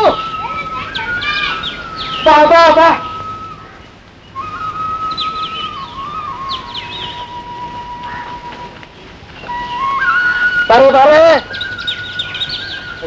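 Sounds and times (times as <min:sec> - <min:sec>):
high bird-like chirps: 0:00.0 - 0:08.8, 0:09.4 - 0:13.0
whistled melody: 0:00.0 - 0:13.0.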